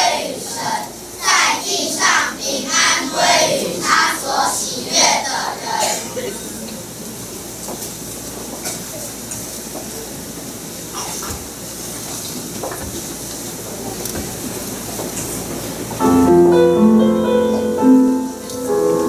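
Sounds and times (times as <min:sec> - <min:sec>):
faint room murmur: 0:00.0 - 0:16.0
piano chords: 0:15.8 - 0:19.0.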